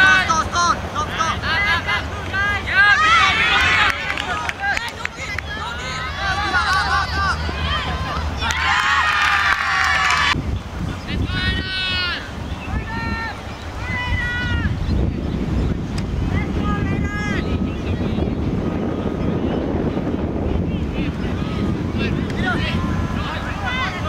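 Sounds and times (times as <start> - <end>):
players shouting: 0.0 - 10.4, 11.1 - 14.8, 20.8 - 24.0
wind rumble on microphone: 2.5 - 24.0.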